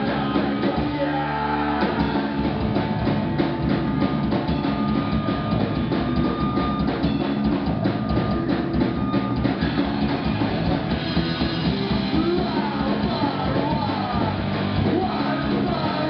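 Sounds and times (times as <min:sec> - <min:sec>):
drum kit beat: 0:00.0 - 0:16.0
live rock band playing: 0:00.0 - 0:16.0.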